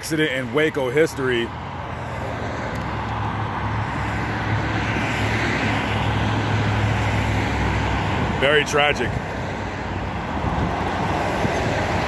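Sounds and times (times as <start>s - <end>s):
cars passing on busy street: 0.0s - 12.0s.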